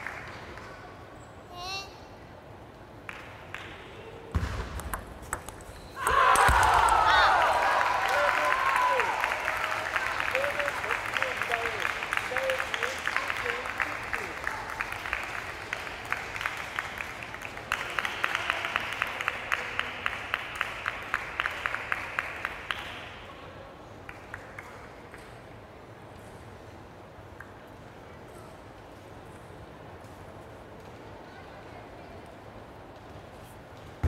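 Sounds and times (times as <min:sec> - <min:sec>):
spectators clapping: 0:00.0 - 0:01.0, 0:03.0 - 0:04.0, 0:06.0 - 0:23.3, 0:24.0 - 0:25.4.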